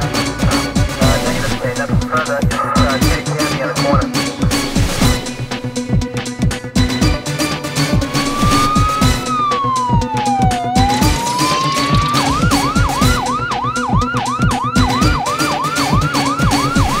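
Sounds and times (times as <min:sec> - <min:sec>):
electronic dance beat: 0:00.0 - 0:07.3, 0:07.9 - 0:17.0
siren wailing and yelping: 0:07.9 - 0:17.0.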